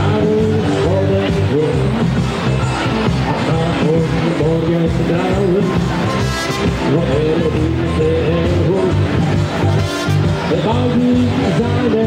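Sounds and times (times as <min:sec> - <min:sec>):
live band music: 0:00.0 - 0:12.0
trumpet melody: 0:05.8 - 0:07.4, 0:09.4 - 0:11.1.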